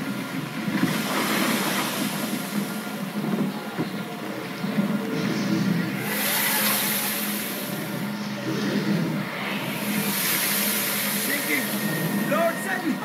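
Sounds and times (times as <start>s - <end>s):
waves: 0.0s - 13.0s
wind: 0.0s - 13.0s
faint voices: 1.6s - 13.0s.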